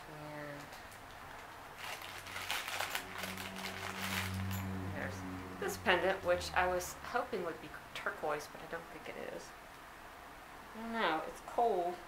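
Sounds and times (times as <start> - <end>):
low steady hum: 0.0 - 12.0
bag crinkling and rustling: 1.7 - 4.8.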